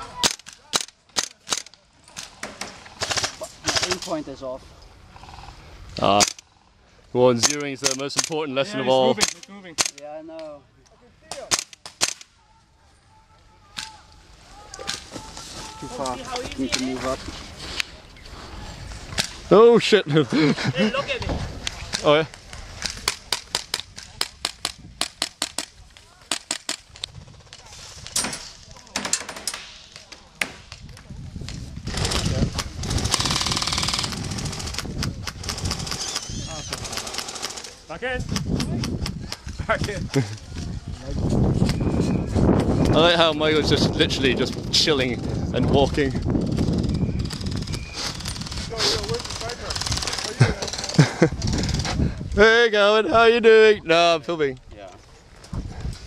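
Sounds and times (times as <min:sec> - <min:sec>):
airsoft rifles firing: 0:11.3 - 0:12.3
airsoft guns firing bursts: 0:31.9 - 0:37.7.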